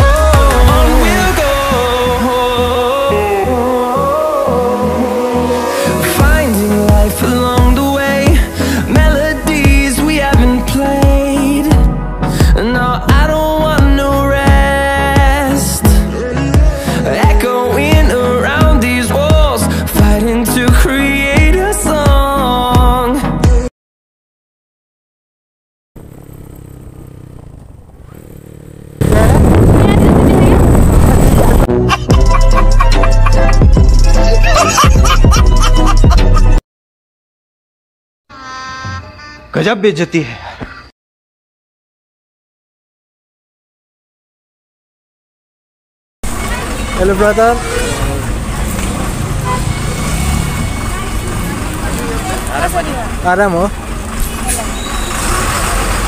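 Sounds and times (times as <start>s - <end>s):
steady low rumble: 0.0s - 3.9s, 29.0s - 31.7s
motorcycle engine running: 26.0s - 31.7s, 46.3s - 56.0s.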